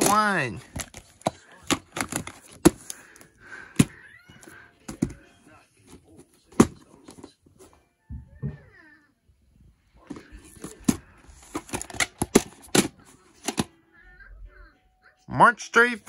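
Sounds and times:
plastic case snapping open: 0:00.0 - 0:03.0, 0:10.1 - 0:13.7.

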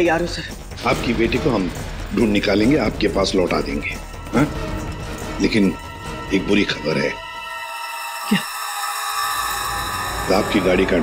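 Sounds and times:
high drone: 0:05.4 - 0:11.0.

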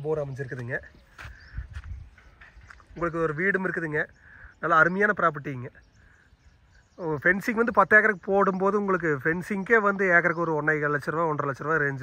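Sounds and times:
footsteps on dry soil: 0:00.0 - 0:03.9.

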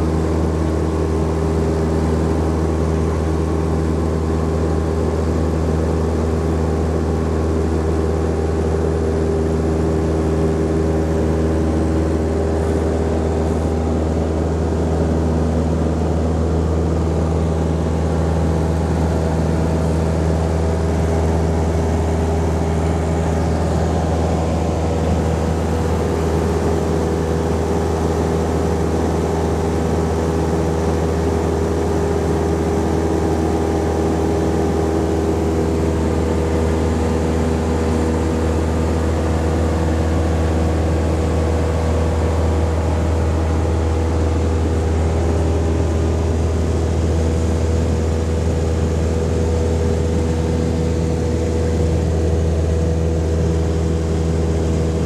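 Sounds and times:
light aircraft engine drone in cabin: 0:00.0 - 0:55.0.

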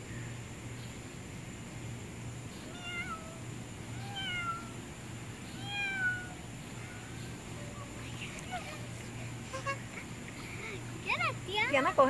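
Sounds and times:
cat meowing: 0:02.7 - 0:04.8, 0:05.5 - 0:07.0.

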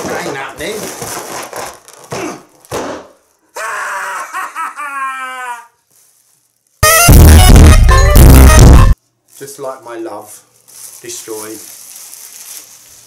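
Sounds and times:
loud distorted music sting: 0:06.8 - 0:09.0.

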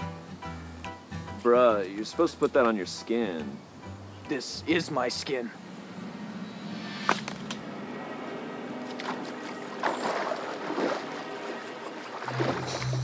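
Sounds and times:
water splashing in a pool: 0:08.8 - 0:13.0.

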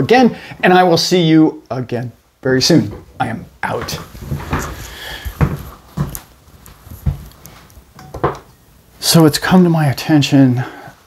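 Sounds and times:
heavy footsteps: 0:02.8 - 0:08.5.

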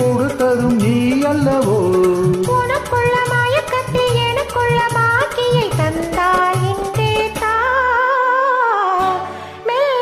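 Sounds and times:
backing music: 0:00.0 - 0:08.1.

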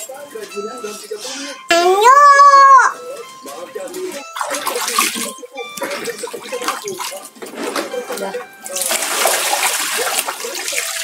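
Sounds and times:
water pouring onto concrete: 0:08.7 - 0:11.0.

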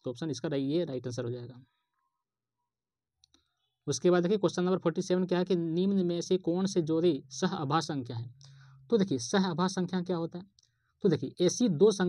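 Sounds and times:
man speaking: 0:00.0 - 0:01.6, 0:03.9 - 0:12.0.

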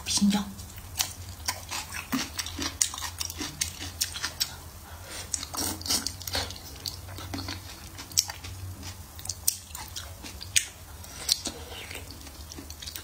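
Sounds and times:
wet chewing clicks and smacks: 0:00.7 - 0:04.6, 0:05.3 - 0:13.0.

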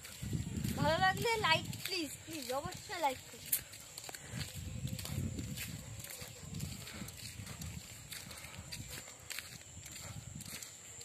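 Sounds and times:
footsteps on gravel: 0:00.0 - 0:11.0.

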